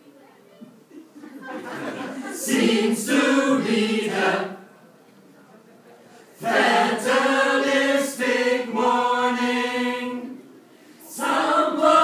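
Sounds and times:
choir singing held notes: 1.7s - 4.7s, 6.4s - 12.0s.

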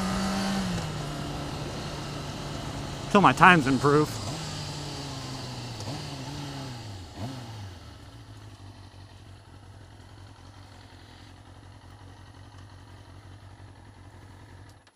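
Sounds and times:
motorcycle engine slowing and idling: 0.0s - 14.9s.

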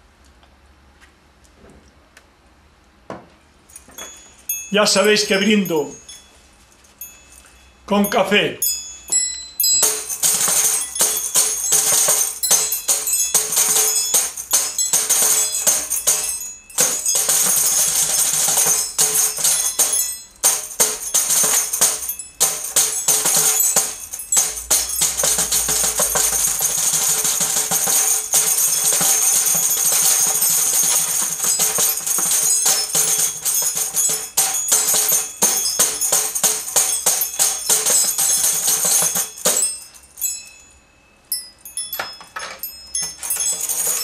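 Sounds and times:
instrumental music with jingling rhythm: 3.7s - 44.0s.

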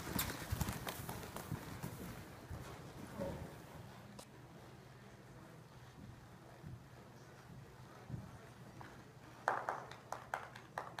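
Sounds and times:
sharp hand claps: 9.4s - 11.0s.

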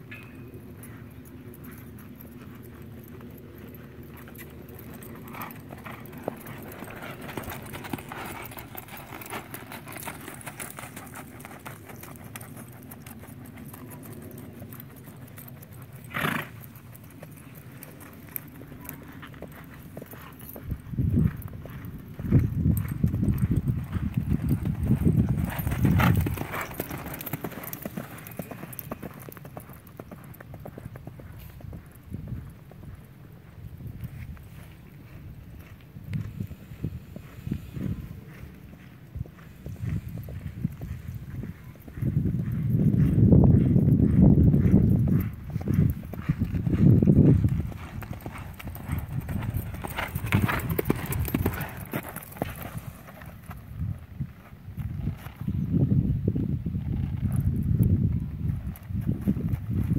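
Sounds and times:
horse hoofbeats on dirt: 0.0s - 59.9s.

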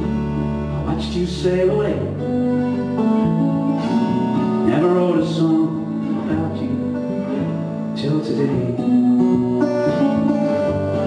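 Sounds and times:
slide lap steel guitar: 0.0s - 11.0s.

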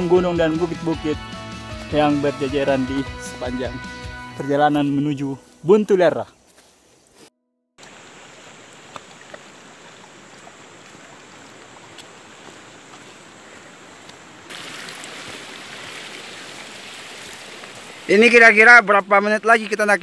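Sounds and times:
stream water rushing: 7.8s - 20.0s.

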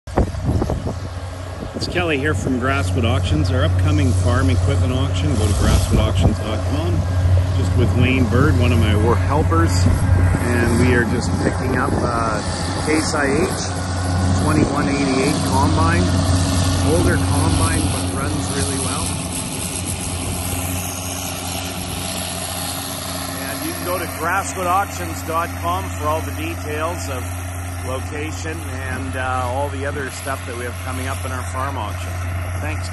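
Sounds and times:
diesel engine droning: 0.1s - 32.9s
man's voice: 16.8s - 19.2s.

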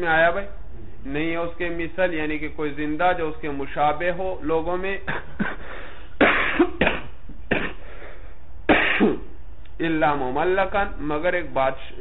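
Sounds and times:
man coughing: 5.0s - 7.9s, 8.7s - 9.3s.

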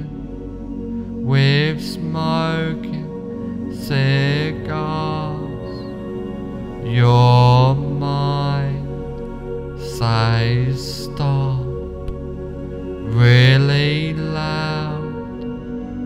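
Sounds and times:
low wordless chanting voice: 0.0s - 16.0s
steady drone: 0.0s - 16.0s.

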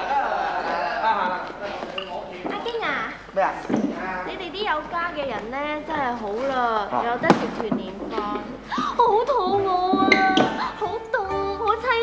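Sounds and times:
two people talking: 0.0s - 12.0s.

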